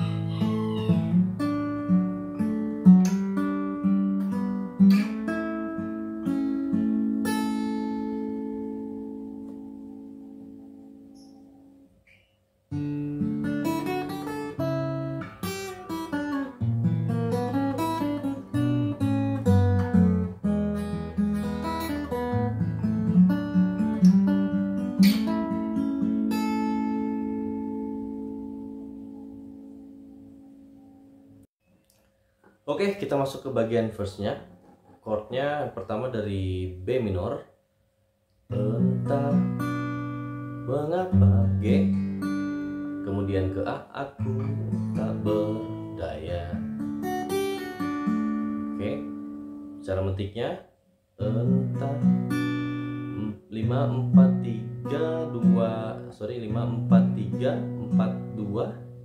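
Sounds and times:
fingerpicked acoustic guitar: 0:00.0 - 0:31.5, 0:38.5 - 0:50.2, 0:51.2 - 0:59.0.

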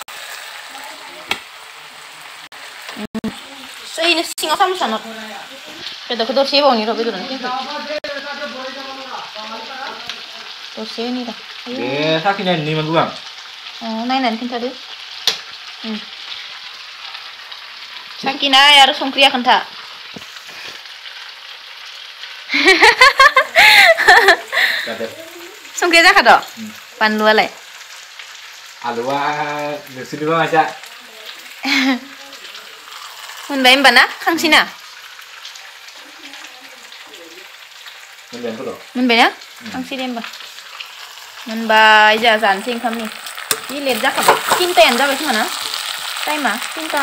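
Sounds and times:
sizzling hiss: 0:00.0 - 0:47.0.

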